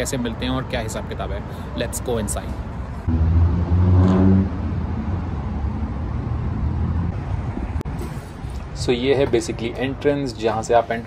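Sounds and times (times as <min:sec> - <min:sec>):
low rumble of cars: 0:00.0 - 0:11.0.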